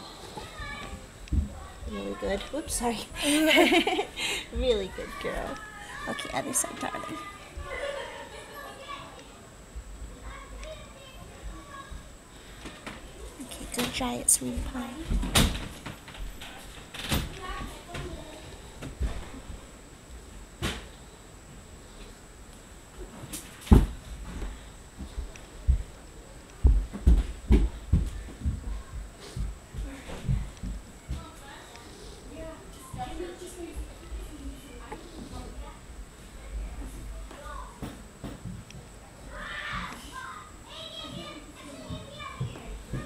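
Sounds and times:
children talking and playing: 0.0 - 15.3, 15.9 - 20.1, 24.3 - 43.0.

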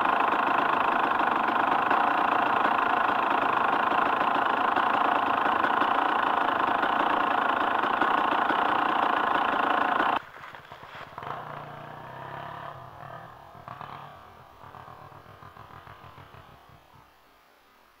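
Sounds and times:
dirt bike engine running steadily: 0.0 - 17.1.

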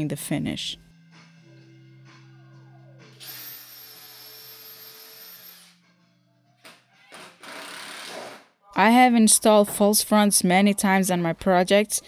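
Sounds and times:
faint background music: 0.0 - 4.8, 8.5 - 12.0
cordless drill whining: 3.2 - 5.8, 7.4 - 8.3.

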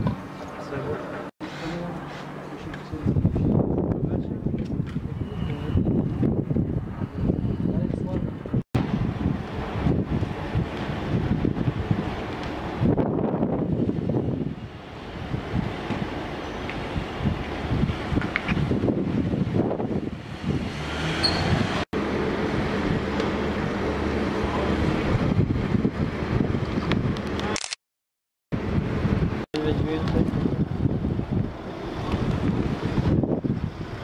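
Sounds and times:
wind buffeting microphone: 2.6 - 27.4, 28.5 - 34.0.

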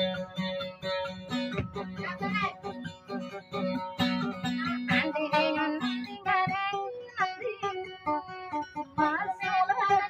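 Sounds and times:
acoustic guitar: 0.0 - 10.0
woman singing: 1.8 - 10.0.

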